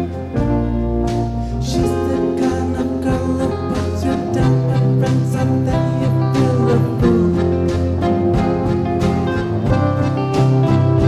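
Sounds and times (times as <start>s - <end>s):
drums with steady beat: 0.0s - 11.0s
electric guitar: 0.0s - 11.0s.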